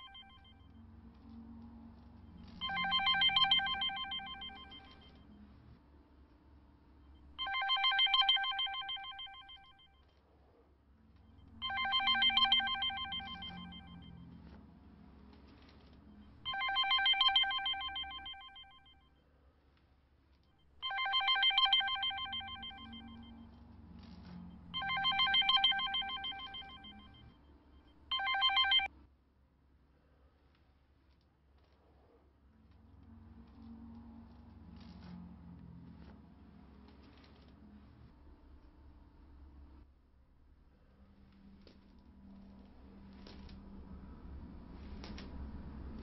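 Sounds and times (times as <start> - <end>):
phone bell ringtone: 0.0 - 0.6, 2.5 - 5.2, 7.4 - 9.9, 11.5 - 14.4, 16.5 - 19.0, 20.8 - 23.6, 24.2 - 27.3, 28.1 - 28.9.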